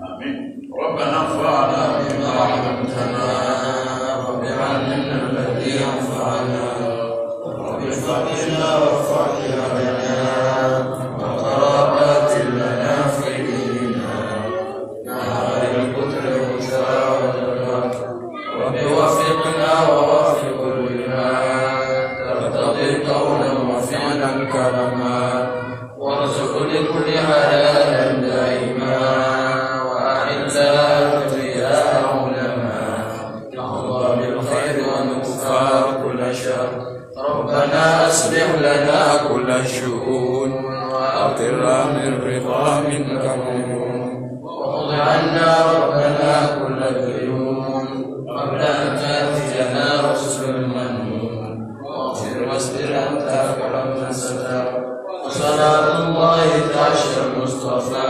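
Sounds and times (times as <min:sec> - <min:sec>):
men chanting: 0:00.0 - 0:58.0.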